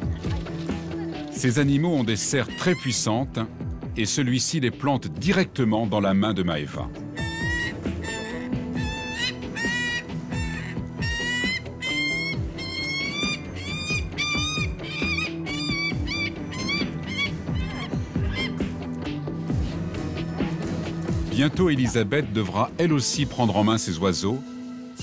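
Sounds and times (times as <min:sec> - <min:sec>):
background music with low notes: 0:00.0 - 0:25.0
bird of prey calling harshly: 0:07.0 - 0:18.8.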